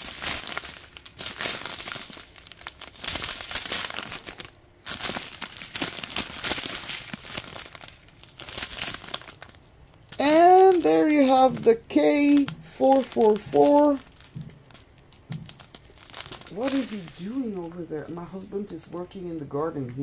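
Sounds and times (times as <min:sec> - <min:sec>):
plastic bags crinkling: 0:00.0 - 0:19.3.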